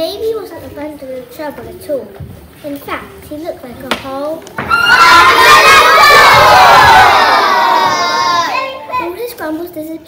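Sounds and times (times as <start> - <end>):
young children shouting together: 4.6 - 9.2.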